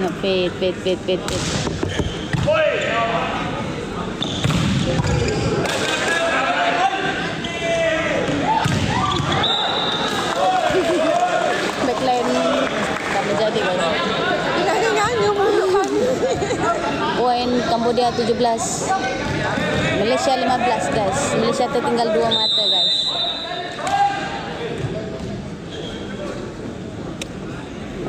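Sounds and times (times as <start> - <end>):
crowd voices and shouts: 0.0 - 28.0
volleyball being hit: 8.6 - 9.4.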